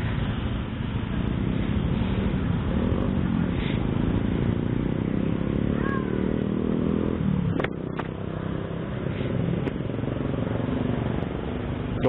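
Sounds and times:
scooter engines idling: 0.0s - 6.4s, 7.2s - 12.0s.

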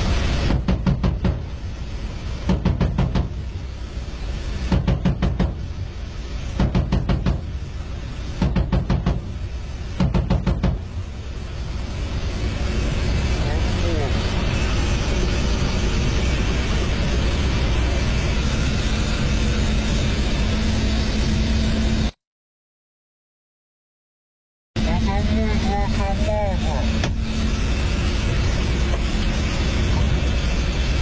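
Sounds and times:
helicopter drone in cockpit: 0.0s - 22.2s, 24.8s - 31.0s
sharp bangs: 0.4s - 1.7s, 2.4s - 3.6s, 4.6s - 5.8s, 6.5s - 7.7s, 8.4s - 10.9s
person speaking: 24.8s - 27.0s.

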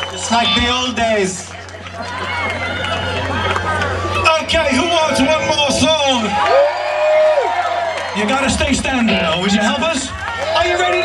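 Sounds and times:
crowd voices and calls: 0.0s - 11.0s.

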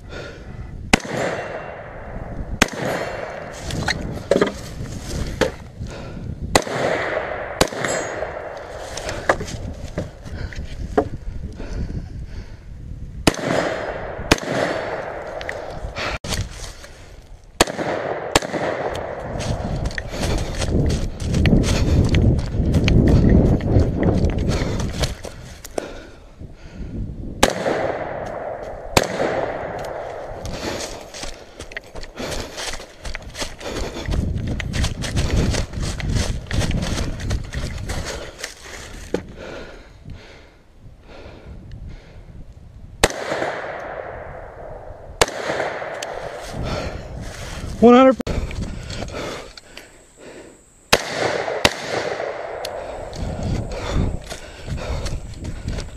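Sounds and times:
rifle shots: 0.9s - 3.6s, 6.5s - 8.8s, 13.2s - 15.7s, 17.6s - 19.6s, 27.4s - 30.4s, 43.0s - 46.4s, 50.9s - 53.0s
running through dry leaves: 19.2s - 25.6s, 30.4s - 39.1s.

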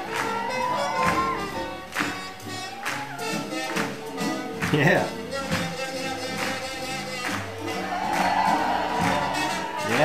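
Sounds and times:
live swing jazz band: 0.0s - 10.0s.

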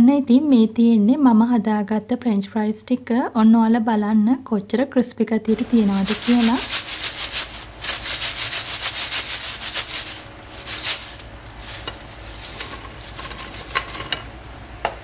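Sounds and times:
fries rattling in metal strainer: 5.5s - 14.4s.

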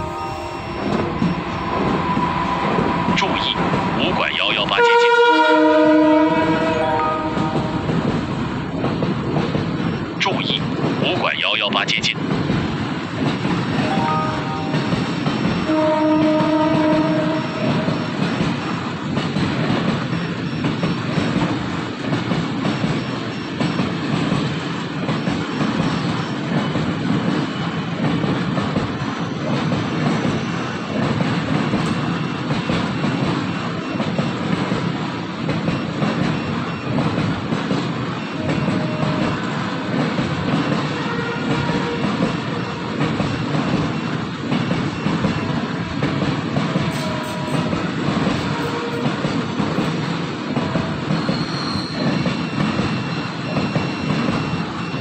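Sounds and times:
freight train rumbling past: 0.0s - 55.0s
train horn: 4.7s - 7.9s, 15.6s - 18.0s, 38.4s - 39.4s, 40.9s - 43.0s, 46.9s - 49.2s.

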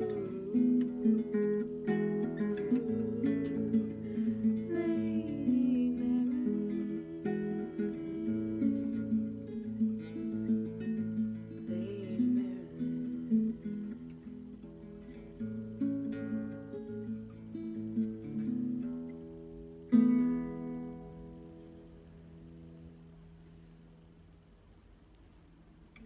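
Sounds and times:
classical guitar picking: 0.0s - 24.2s.

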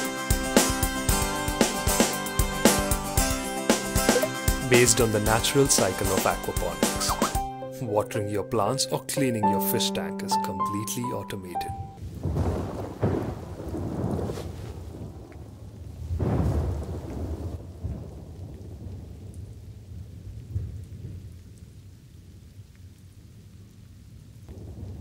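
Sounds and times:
thunder rumbling: 12.0s - 22.4s, 24.4s - 25.0s
rain: 12.0s - 25.0s.

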